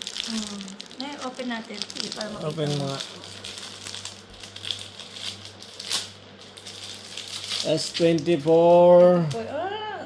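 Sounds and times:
plastic packaging crinkling: 0.0 - 9.5.

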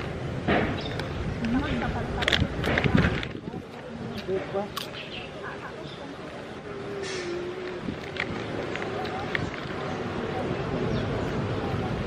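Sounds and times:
background chatter of people: 0.0 - 12.0.

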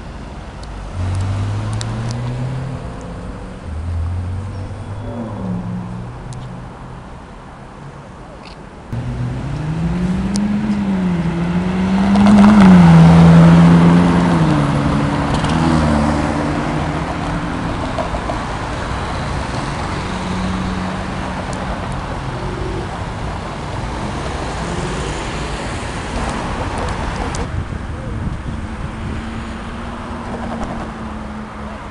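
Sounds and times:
city traffic noise: 0.0 - 31.9
car engine accelerating: 0.9 - 6.7, 8.9 - 27.4.

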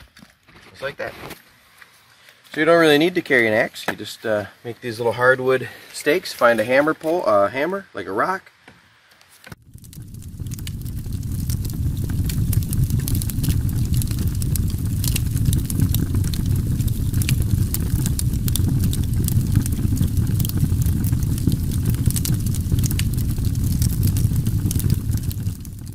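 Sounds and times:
sharp crackles: 9.5 - 25.9
steady rumbling noise: 9.5 - 25.9.

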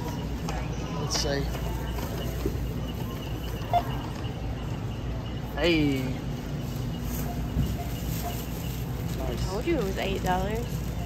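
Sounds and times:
store background hum: 0.0 - 11.0.

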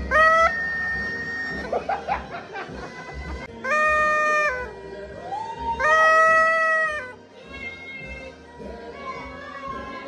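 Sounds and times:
party horn blast: 0.0 - 1.7, 3.5 - 4.8.

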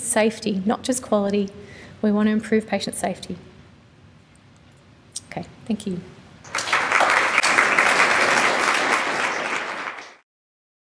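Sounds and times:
audience applauding: 6.4 - 10.2.

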